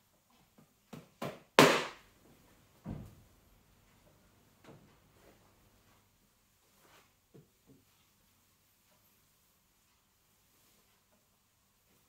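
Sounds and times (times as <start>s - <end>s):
towel swishing: 7.8s - 12.0s.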